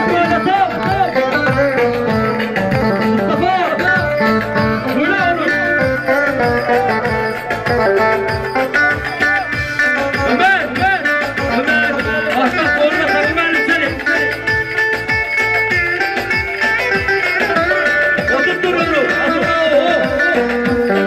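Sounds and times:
plucked string melody: 0:00.0 - 0:21.0.

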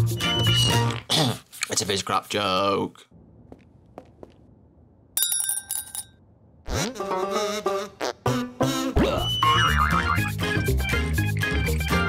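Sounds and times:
metallic jingle: 0:05.2 - 0:06.2.

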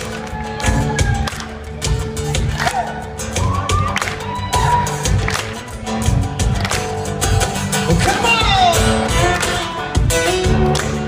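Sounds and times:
crowd shouts and whoops: 0:00.0 - 0:05.6
cajon beat: 0:00.0 - 0:11.0
strummed acoustic guitars: 0:00.0 - 0:11.0.

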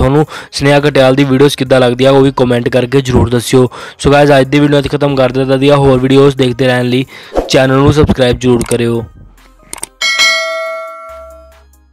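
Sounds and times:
mouse clicks: 0:09.7 - 0:09.9
bright bell ding: 0:10.0 - 0:11.6.

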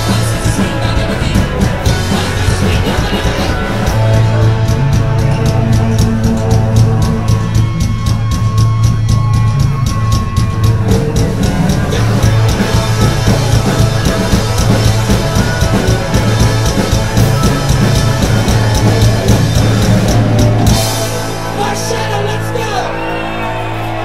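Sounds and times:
bass guitar: 0:00.0 - 0:24.0
distorted electric guitars: 0:00.0 - 0:24.0
drum kit with cymbals: 0:00.0 - 0:24.0.

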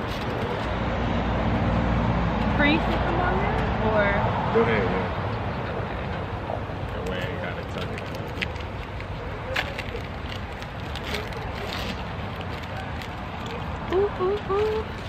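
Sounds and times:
faint voices: 0:04.7 - 0:15.0.

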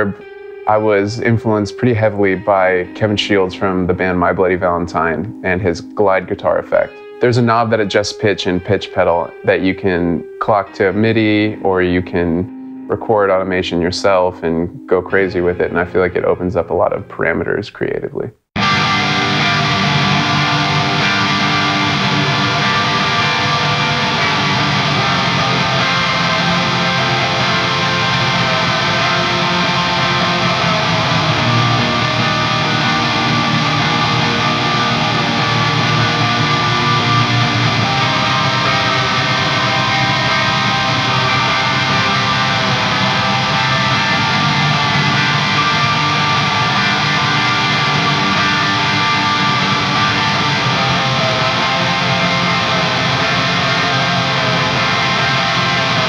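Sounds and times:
electric guitar with delay and reverb: 0:00.0 - 0:16.4, 0:18.6 - 0:56.0.

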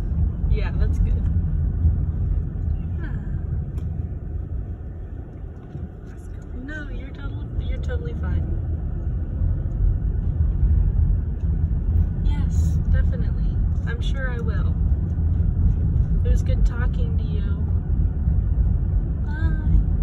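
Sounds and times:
car engine and tyre noise: 0:00.0 - 0:20.0.

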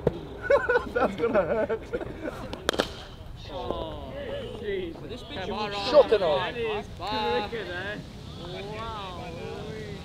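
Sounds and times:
men's voices: 0:00.5 - 0:10.0
sharp crack: 0:02.5 - 0:03.3.

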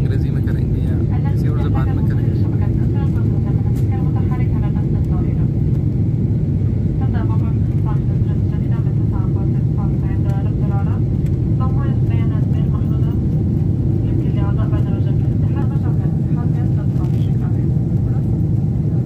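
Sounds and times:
airliner cabin engine roar: 0:00.0 - 0:19.0.

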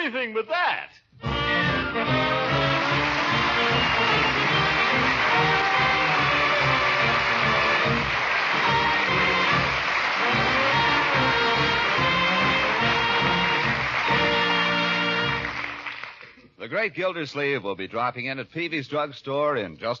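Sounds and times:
orchestra playing swing music with brass: 0:01.2 - 0:15.9.

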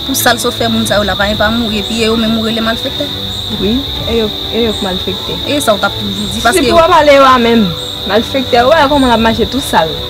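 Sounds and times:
crickets chirring: 0:00.0 - 0:10.0
people talking: 0:00.0 - 0:10.0.

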